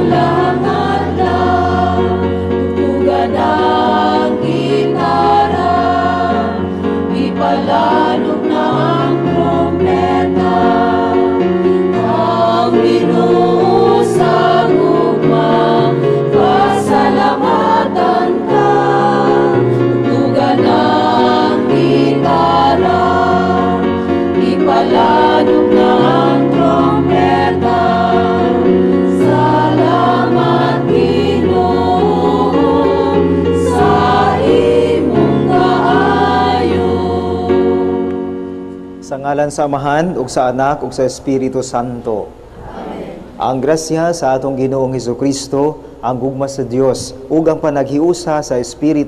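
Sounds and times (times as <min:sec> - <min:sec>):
keyboard chords: 0:00.0 - 0:41.3
choir singing a hymn: 0:00.0 - 0:48.7.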